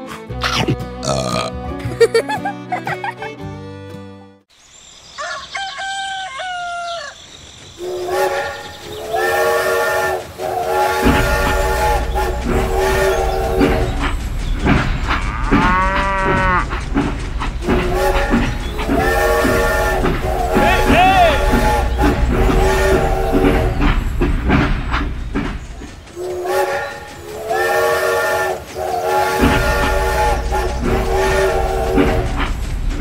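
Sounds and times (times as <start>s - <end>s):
train running rumble: 7.6s - 33.0s
train horn blasts: 7.8s - 14.1s, 15.2s - 16.7s, 17.6s - 23.9s, 26.2s - 32.5s.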